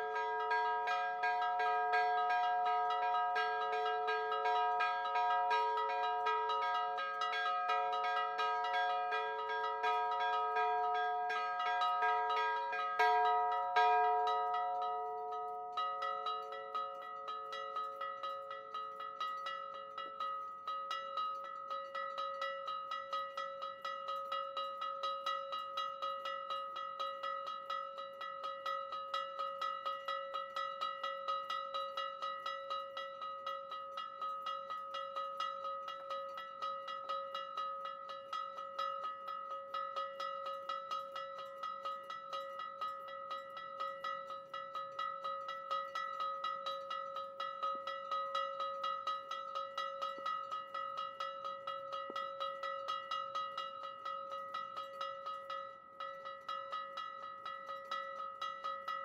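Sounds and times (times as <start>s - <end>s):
large church bell strokes: 0.0s - 19.2s
higher bell struck rapidly: 0.0s - 19.7s.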